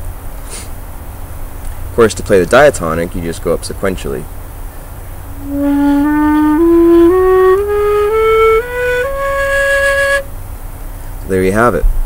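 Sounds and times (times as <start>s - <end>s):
end-blown flute playing a scale: 5.3s - 10.3s.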